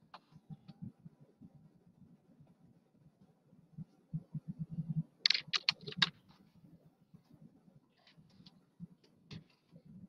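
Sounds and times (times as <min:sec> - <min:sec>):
typing on a computer keyboard: 0:05.3 - 0:06.1.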